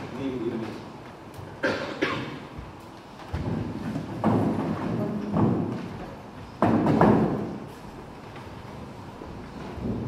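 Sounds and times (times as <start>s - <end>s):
chairs thumping and shuffling: 1.7s - 10.0s
footsteps on stage floor: 2.4s - 10.0s.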